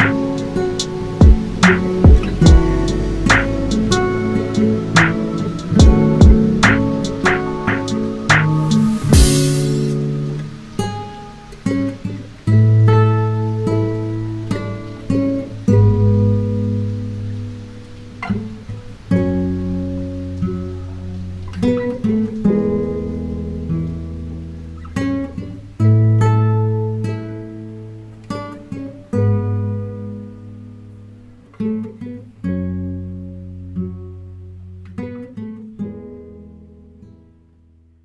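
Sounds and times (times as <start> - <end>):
classical guitar fingerpicked: 0.0 - 38.0.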